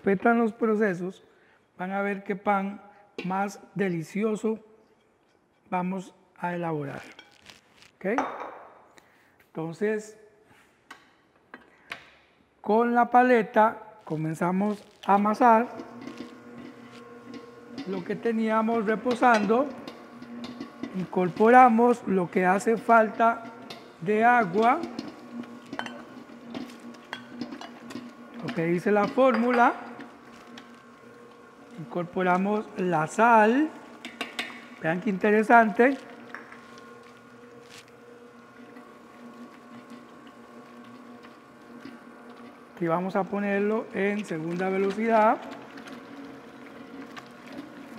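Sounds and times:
beater kneading dough: 14.1s - 47.9s
stand mixer motor hum: 15.1s - 47.9s.

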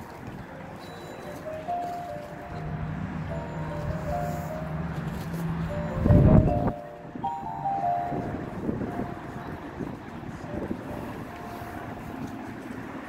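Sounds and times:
wind buffeting microphone: 2.4s - 13.0s.

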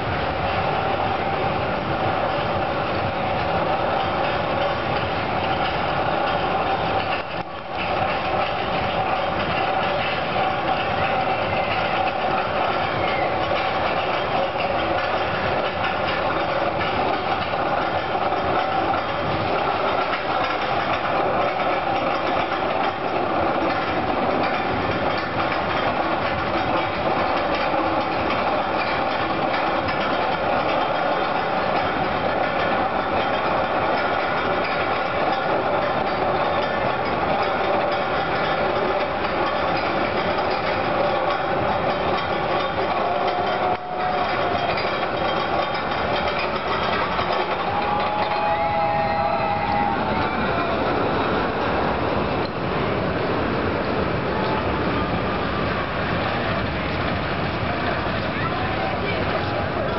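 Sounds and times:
mechanical rumble with droning hum: 0.0s - 59.9s.

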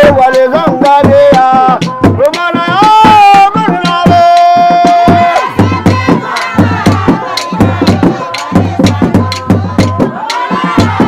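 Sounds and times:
drums beating: 0.0s - 11.0s
high singing voice: 0.0s - 11.0s.

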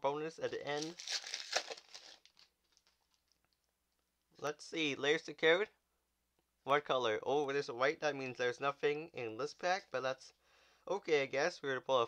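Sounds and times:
trading cards rustling: 0.6s - 3.0s
foil wrapper being handled: 0.7s - 3.2s.

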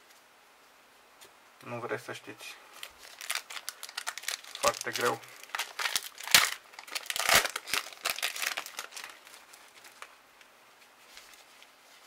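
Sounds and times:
foil wrapper crinkling: 2.7s - 10.2s
foil wrapper ripping: 2.8s - 10.1s.

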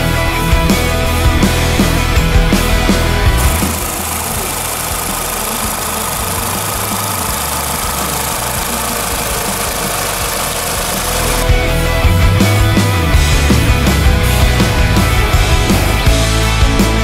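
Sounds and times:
car engine idling: 0.8s - 16.3s.

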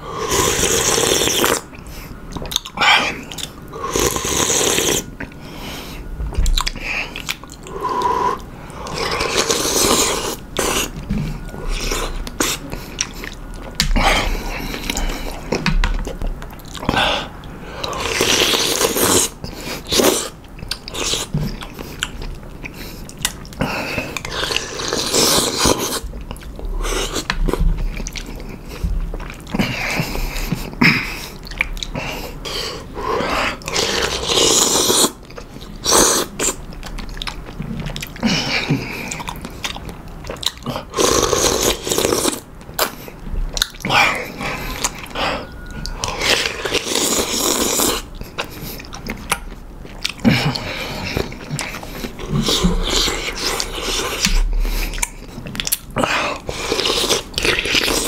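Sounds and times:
slurping noodles and broth: 0.1s - 1.7s, 3.8s - 5.1s, 7.8s - 10.9s, 17.8s - 20.4s, 23.9s - 26.0s, 32.5s - 35.2s, 35.8s - 36.6s, 40.9s - 43.1s, 46.0s - 48.9s, 56.0s - 58.0s
chewing: 0.4s - 58.0s.

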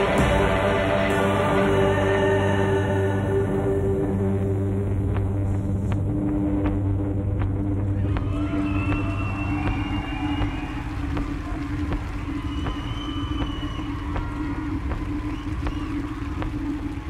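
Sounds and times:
slow droning rock band: 0.0s - 10.8s.

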